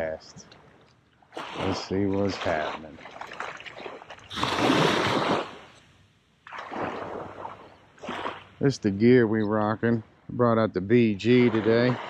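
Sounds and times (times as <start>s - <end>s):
small waves washing on shore: 1.3s - 5.8s, 6.4s - 8.7s, 11.2s - 12.0s.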